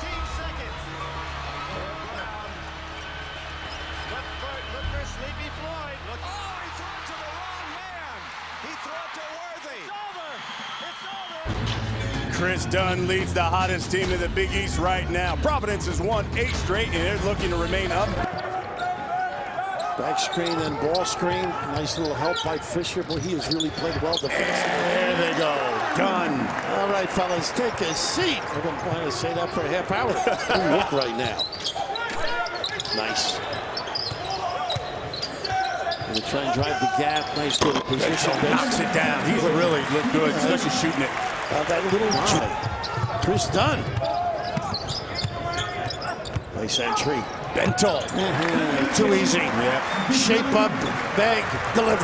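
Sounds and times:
crowd murmur: 48.1s - 51.7s.

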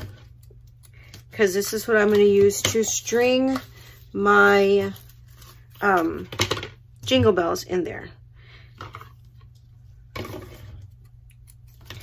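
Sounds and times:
ribbon rustling: 3.1s - 6.2s.

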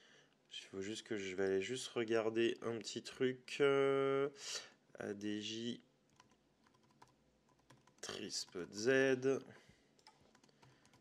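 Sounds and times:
typing on computer keyboard: 6.1s - 8.8s, 10.0s - 11.0s.

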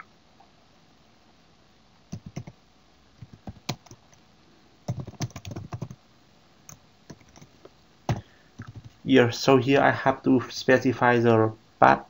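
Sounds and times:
typing on computer keyboard: 2.1s - 2.6s, 3.2s - 4.2s, 4.9s - 6.0s, 6.7s - 7.5s, 8.1s - 9.0s.

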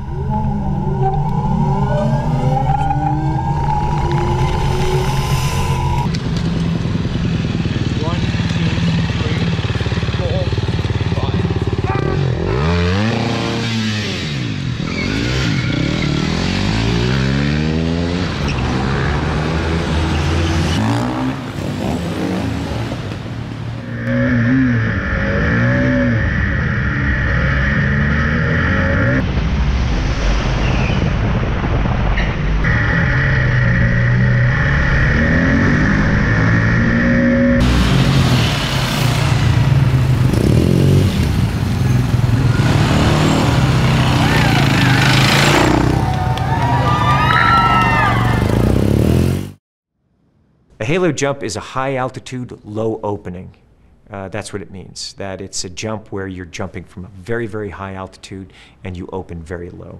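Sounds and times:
motorcycle engine revving: 0.0s - 23.1s, 23.8s - 29.2s, 32.6s - 46.4s, 48.2s - 49.6s.

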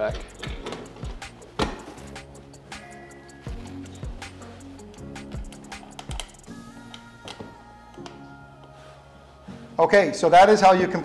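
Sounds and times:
background music: 0.0s - 11.0s
screwdrivers clicking on metal: 0.2s - 1.7s, 3.7s - 8.2s.

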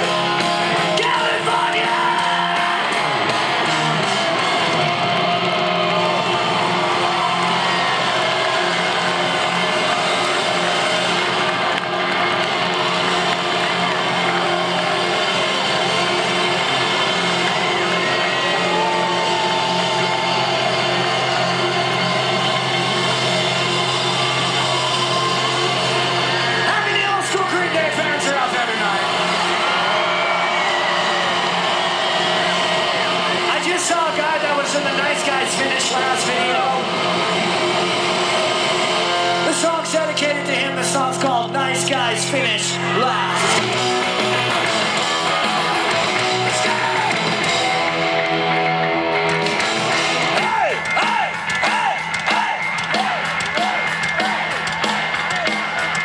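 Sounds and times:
crowd cheering and shouting: 0.0s - 56.0s.

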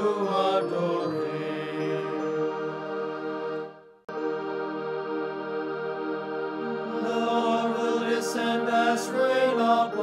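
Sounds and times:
devotional chant singing: 0.0s - 3.4s, 6.6s - 10.0s.

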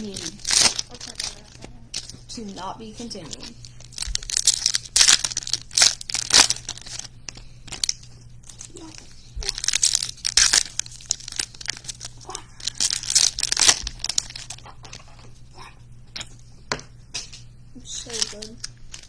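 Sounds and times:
foil wrapper tearing and crinkling: 0.0s - 15.0s, 17.9s - 19.0s.

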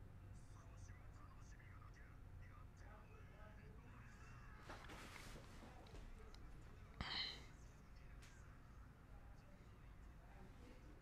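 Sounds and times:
faint whispered speech: 0.0s - 11.0s.

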